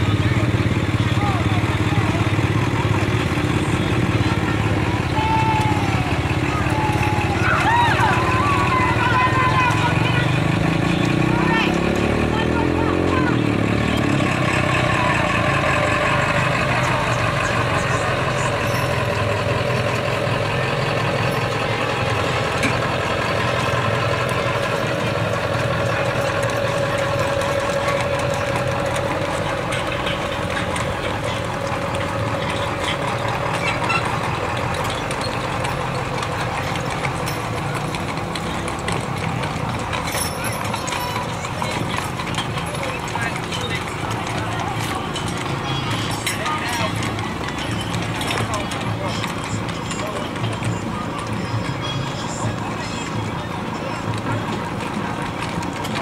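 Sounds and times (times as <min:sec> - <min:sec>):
hooves clip-clopping on pavement: 0:00.0 - 0:56.0
people talking: 0:00.0 - 0:56.0
vehicle engine humming: 0:00.0 - 0:56.0.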